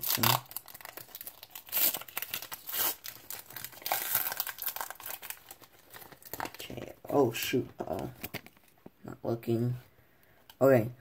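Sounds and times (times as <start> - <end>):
wrapper crinkling and tearing: 0.0 - 8.8.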